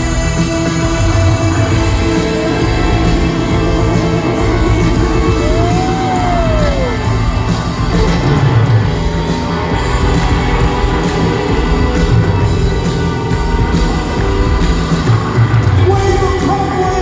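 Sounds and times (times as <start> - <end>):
crowd noise: 0.0 - 17.0
live rock band playing: 0.0 - 17.0.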